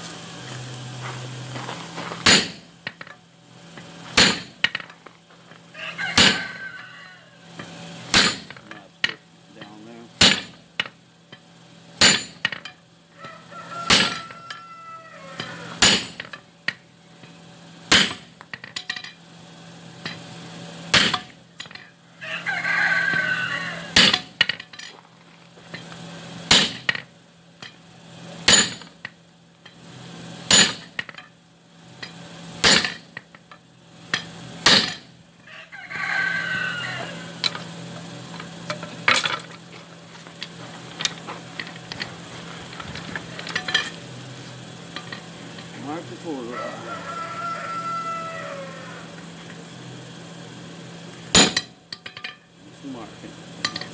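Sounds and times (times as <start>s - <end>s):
hammer striking steel on anvil: 2.2s - 2.7s, 4.2s - 4.7s, 6.2s - 6.6s, 8.1s - 10.6s, 12.0s - 12.8s, 13.9s - 14.6s, 15.4s - 16.4s, 17.9s - 19.2s, 20.9s - 21.9s, 24.0s - 24.4s, 26.5s - 27.0s, 28.5s - 28.9s, 30.5s - 31.3s, 32.0s - 33.1s, 34.1s - 35.1s, 51.3s - 52.4s, 53.6s - 53.9s.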